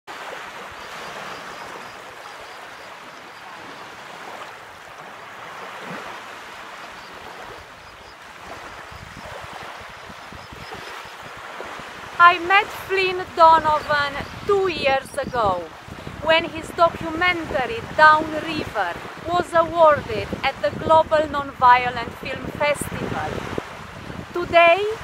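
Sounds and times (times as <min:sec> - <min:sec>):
small waves lapping on sand: 0:00.1 - 0:25.0.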